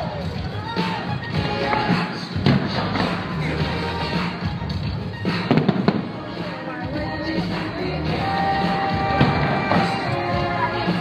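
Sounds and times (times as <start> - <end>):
soundtrack music: 0.0 - 11.0
fireworks sharp bangs: 5.3 - 6.7
fireworks thump: 5.4 - 6.3.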